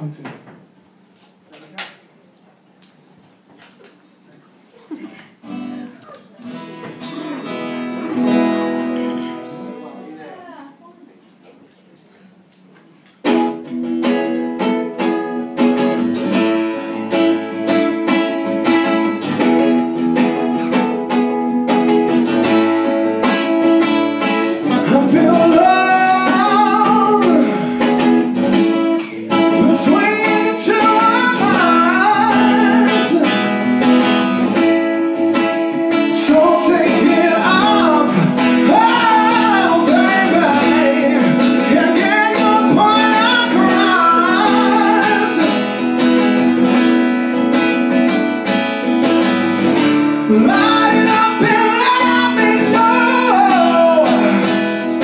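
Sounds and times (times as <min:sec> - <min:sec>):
acoustic guitar strumming chords: 0:05.4 - 0:10.5, 0:13.2 - 0:55.0
person singing: 0:24.5 - 0:33.8, 0:35.9 - 0:45.9, 0:50.3 - 0:54.5.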